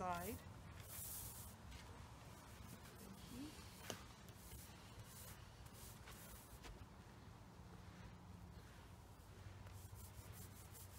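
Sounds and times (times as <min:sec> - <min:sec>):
paint roller rubbing strokes: 0:00.7 - 0:06.8, 0:07.8 - 0:10.9.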